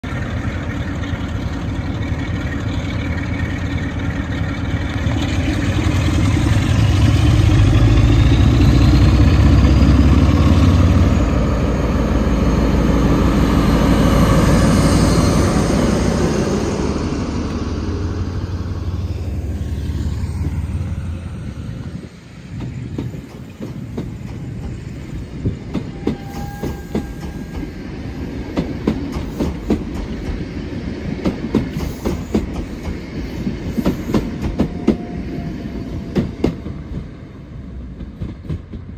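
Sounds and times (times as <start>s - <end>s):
diesel locomotive engine rumbling: 0.0s - 38.9s
train coaches rolling past: 0.0s - 38.9s.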